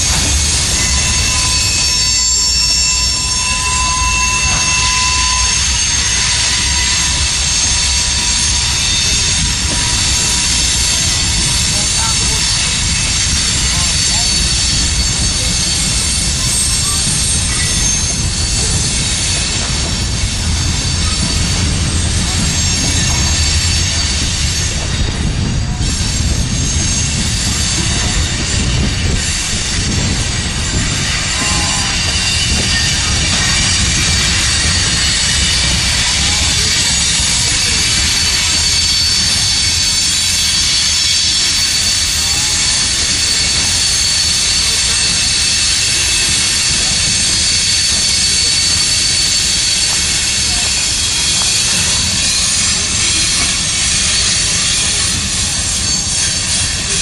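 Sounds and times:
freight train wheels rumbling: 0:00.0 - 0:57.0
high-pitched wheel squeal: 0:00.0 - 0:57.0.

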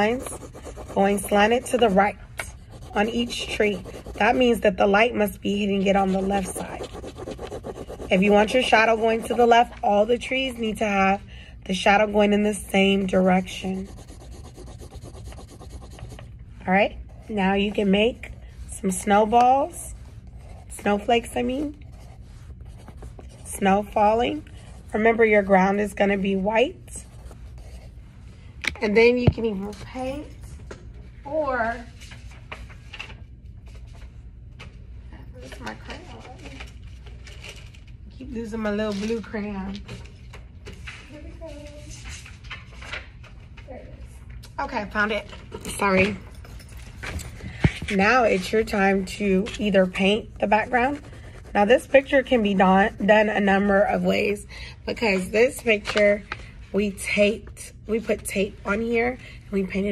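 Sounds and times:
pencil shading on paper: 0:00.0 - 0:10.1, 0:12.8 - 0:16.3, 0:50.0 - 0:52.5.

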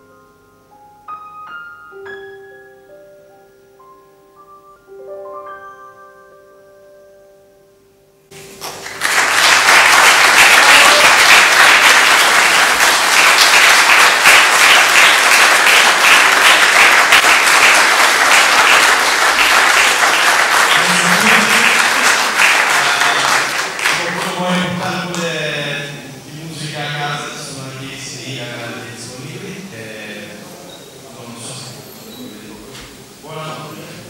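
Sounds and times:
piano note: 0:00.0 - 0:09.0
audience applause: 0:08.3 - 0:27.6.

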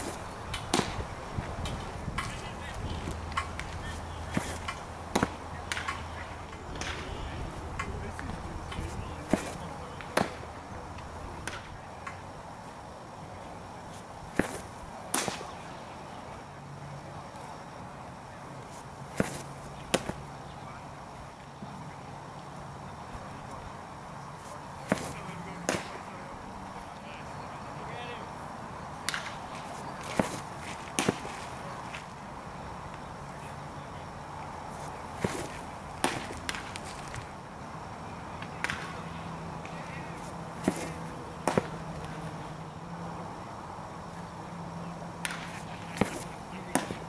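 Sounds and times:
baseball smacking into leather mitt: 0:00.0 - 0:02.4, 0:03.0 - 0:06.0, 0:07.8 - 0:10.4, 0:14.3 - 0:15.6, 0:19.2 - 0:20.2, 0:24.8 - 0:26.0, 0:29.0 - 0:32.0, 0:35.2 - 0:37.3, 0:38.4 - 0:42.3, 0:45.2 - 0:47.0.

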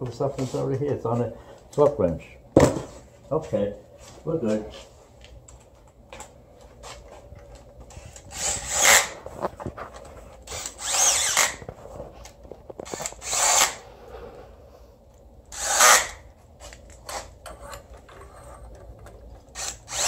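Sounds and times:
ratchet wrench bursts: 0:10.5 - 0:11.6, 0:12.8 - 0:13.8, 0:15.5 - 0:16.2, 0:19.5 - 0:20.0.

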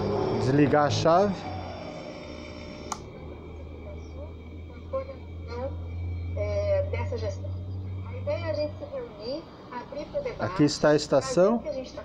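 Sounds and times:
steady low hum: 0:00.0 - 0:12.0
toggle switch click: 0:02.9 - 0:03.1.

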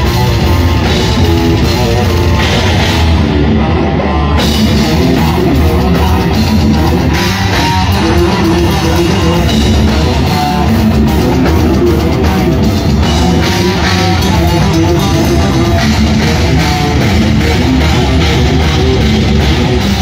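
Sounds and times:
bass guitar: 0:00.0 - 0:20.0
drum kit: 0:00.0 - 0:20.0
electric guitar: 0:00.0 - 0:20.0.

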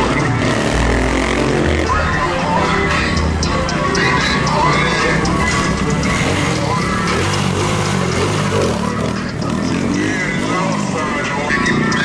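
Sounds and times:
dirt bike engine revving: 0:00.0 - 0:12.0
voices: 0:00.0 - 0:12.0.

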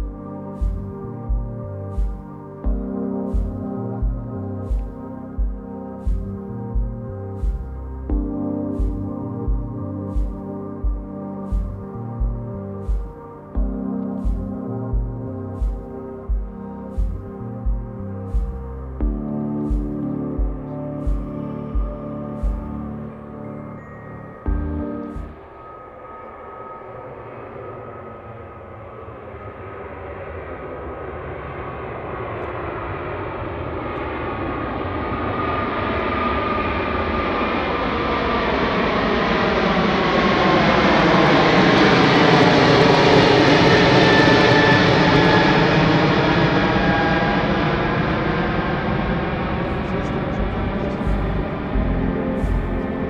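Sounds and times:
jet airliner passing overhead: 0:00.0 - 0:53.0.

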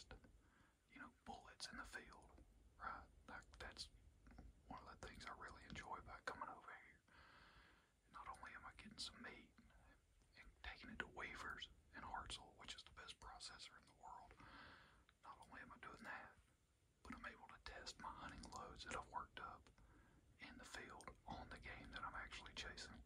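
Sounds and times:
man whispering: 0:00.0 - 0:23.0.

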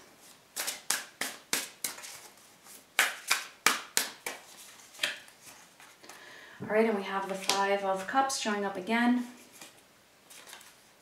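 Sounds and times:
cards being shuffled: 0:00.2 - 0:06.1, 0:07.2 - 0:08.1, 0:09.4 - 0:10.8.

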